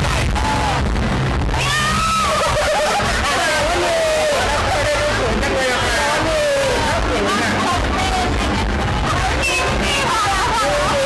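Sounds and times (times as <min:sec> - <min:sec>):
background music: 0:00.0 - 0:11.0
woman squealing laugh: 0:02.0 - 0:03.3
woman talking: 0:06.8 - 0:08.4, 0:09.1 - 0:11.0.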